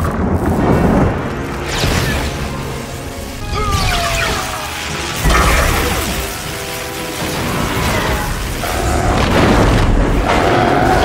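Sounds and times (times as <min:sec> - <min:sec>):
film score music: 0:00.0 - 0:11.0.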